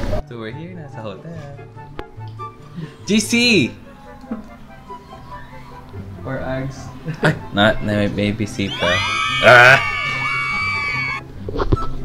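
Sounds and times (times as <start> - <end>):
music: 0.0 - 12.0
high vocal shriek: 8.6 - 11.2.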